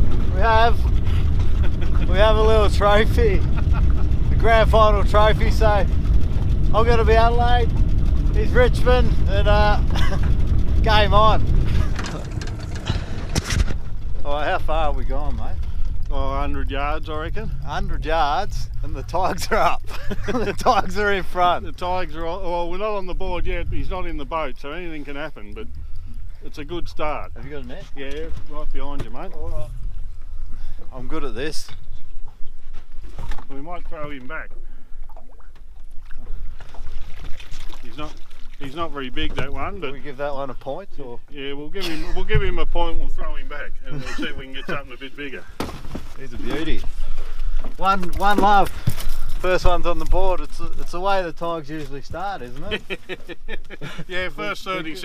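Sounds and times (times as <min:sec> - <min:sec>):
outboard motor running: 0:00.0 - 0:42.5
steady low rumble: 0:00.0 - 0:55.0
water splashing and sloshing: 0:24.0 - 0:40.2, 0:45.1 - 0:52.3.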